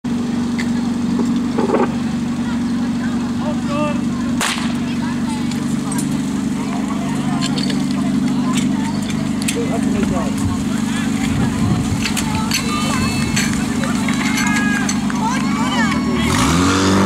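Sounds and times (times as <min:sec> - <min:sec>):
pump engine running: 0:00.0 - 0:17.0
sharp crack: 0:04.4 - 0:04.9.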